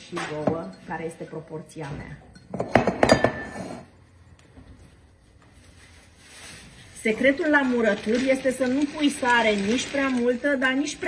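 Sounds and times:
clinks and knocks on glass jar: 2.3s - 3.8s.

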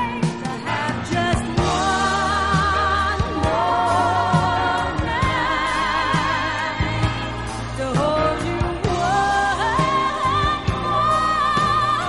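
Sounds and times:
bass and drums: 0.0s - 12.0s
person singing with vibrato: 0.0s - 12.0s.

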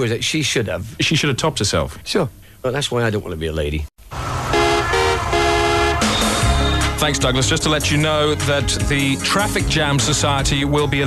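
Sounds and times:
traffic noise: 4.0s - 7.0s
car horn honking: 4.1s - 6.8s.

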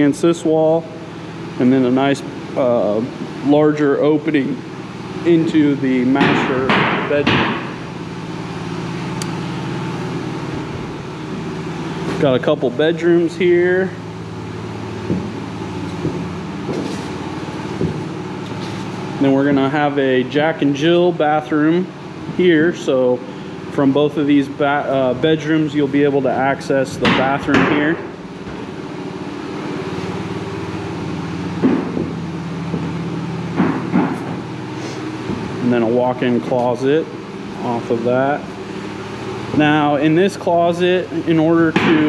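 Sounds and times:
machinery humming: 0.0s - 42.0s.

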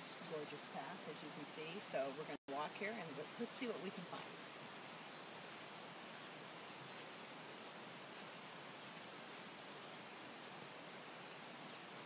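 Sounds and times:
outdoor ambient hiss: 0.0s - 12.0s.

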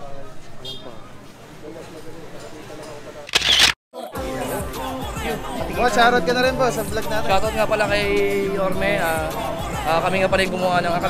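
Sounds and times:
camera shutter click: 3.3s - 3.8s.

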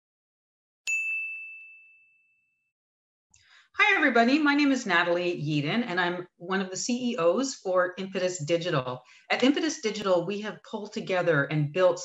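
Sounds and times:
bright high chime: 0.9s - 2.6s.

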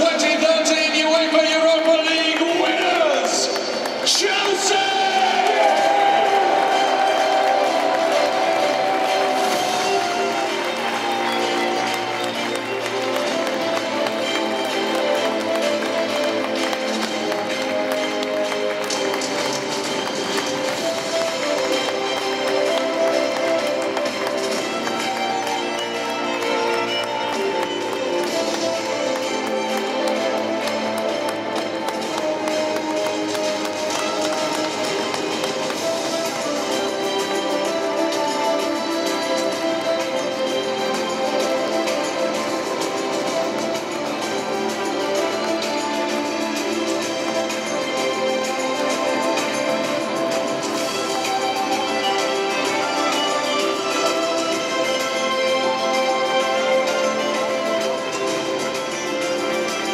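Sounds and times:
music with held notes: 0.0s - 59.9s
noisy background: 0.0s - 59.9s.

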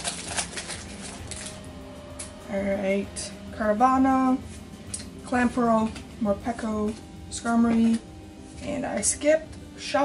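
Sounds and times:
cards rustling: 0.0s - 1.6s
foil wrapper crinkling: 0.0s - 1.6s.

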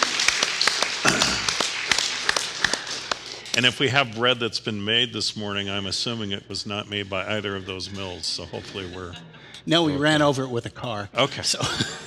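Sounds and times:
close sharp hand claps: 0.0s - 3.9s
crowd applauding: 0.0s - 4.0s.

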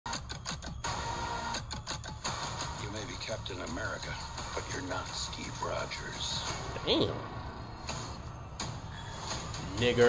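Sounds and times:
music: 0.1s - 10.0s.

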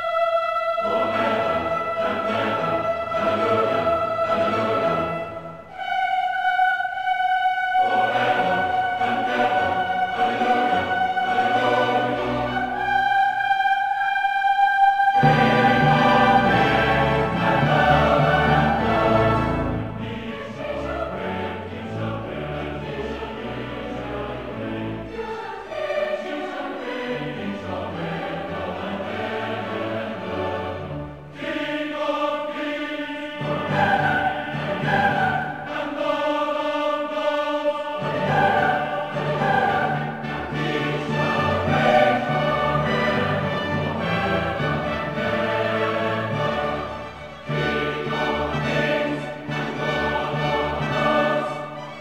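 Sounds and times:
mixed choir singing: 0.0s - 52.0s
orchestra playing: 7.7s - 13.4s, 15.0s - 31.8s, 38.0s - 52.0s.

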